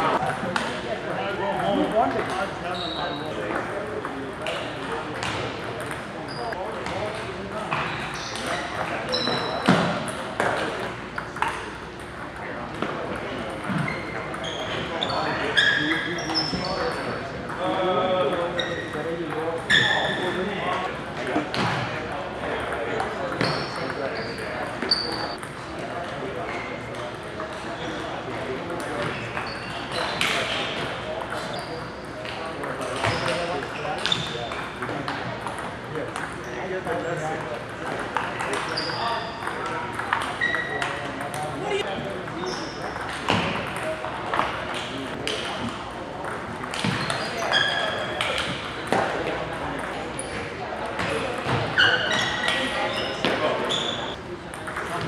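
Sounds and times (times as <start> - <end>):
murmur of voices: 0.0 - 55.0
short high squeaks: 38.7 - 39.5, 51.8 - 54.2.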